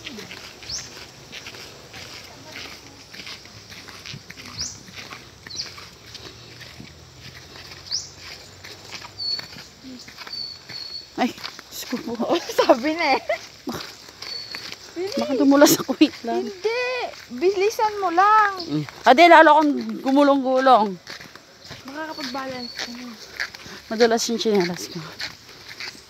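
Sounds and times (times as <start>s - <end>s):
birds chirping: 0.0s - 26.0s
footsteps on dirt trail: 0.0s - 26.0s.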